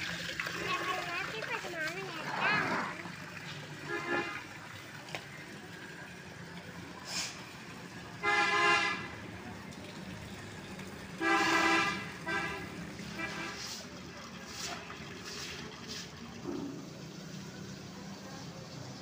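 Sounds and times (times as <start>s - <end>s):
vehicle horn honking: 3.8s - 4.4s, 8.2s - 9.1s, 11.2s - 13.7s.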